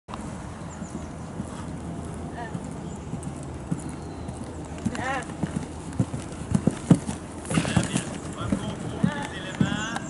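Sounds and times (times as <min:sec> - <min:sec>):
hoofbeats on sand: 0:00.7 - 0:10.0.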